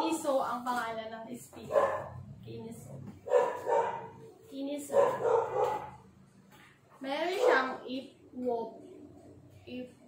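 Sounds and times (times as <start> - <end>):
dog barking: 1.7 - 2.2, 3.2 - 4.2, 4.9 - 6.0, 7.3 - 7.8.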